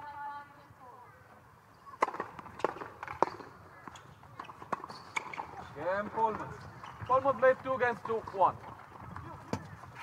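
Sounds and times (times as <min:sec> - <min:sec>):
tennis ball hit by rackets: 0:02.0 - 0:05.6
tennis ball bouncing: 0:02.0 - 0:07.0.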